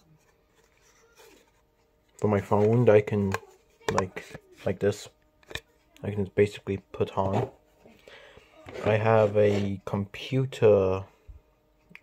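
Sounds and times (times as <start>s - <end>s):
soft handling scrape: 8.6s - 9.8s.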